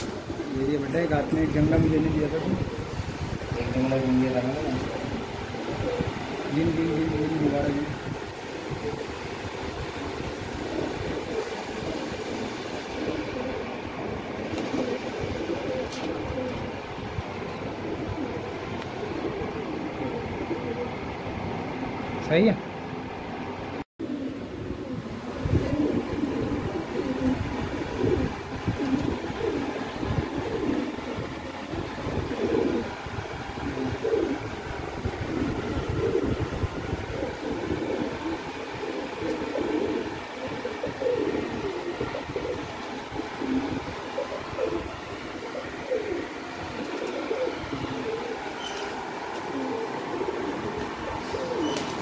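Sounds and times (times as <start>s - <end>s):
pigeons cooing: 0.0s - 22.1s, 23.0s - 52.0s.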